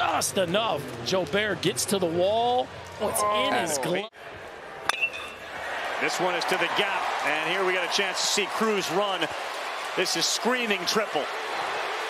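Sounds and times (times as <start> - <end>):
crowd noise: 0.0 - 12.0
metal bat hitting ball: 4.9 - 5.4.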